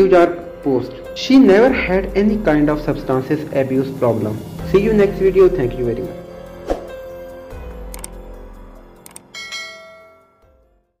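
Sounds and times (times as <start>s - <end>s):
quick clicks: 7.9s - 8.2s, 9.0s - 9.3s
bell chime: 9.3s - 10.6s.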